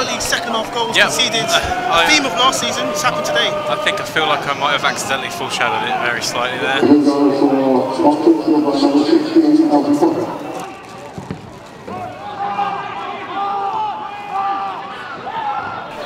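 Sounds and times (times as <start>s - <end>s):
football supporters chanting: 0.0s - 10.8s.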